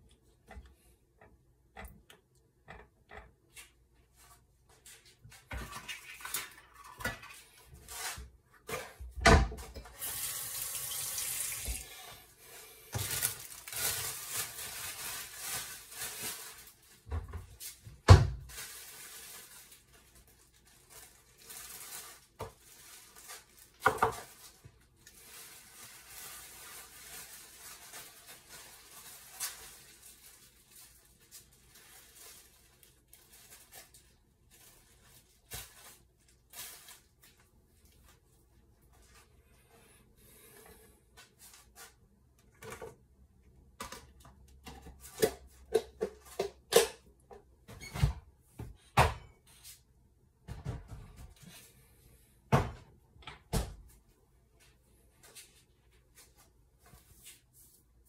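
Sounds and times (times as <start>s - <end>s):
kitchen tap running: 9.9s - 12.1s.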